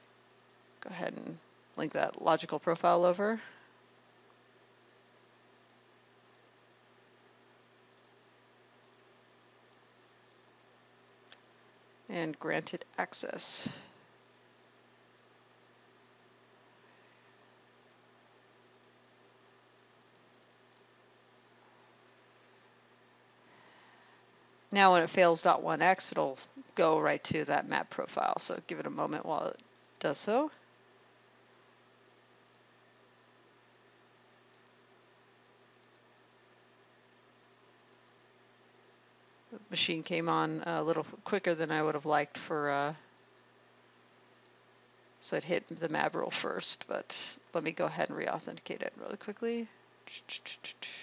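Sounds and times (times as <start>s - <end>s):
faint steady hum: 0.0s - 51.0s
computer mouse clicks: 0.3s - 0.5s, 4.8s - 5.0s, 6.2s - 6.5s, 8.0s - 8.2s, 8.8s - 9.1s, 9.7s - 10.6s, 11.2s - 11.7s, 14.2s - 14.5s, 17.8s - 18.0s, 18.7s - 19.0s, 20.0s - 20.9s, 32.4s - 32.7s, 34.5s - 34.8s, 35.8s - 36.1s, 37.9s - 38.2s, 44.3s - 44.6s.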